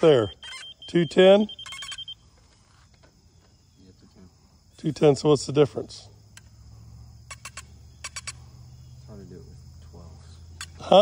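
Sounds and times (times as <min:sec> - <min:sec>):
high insect chirring: 0:00.0 - 0:11.0.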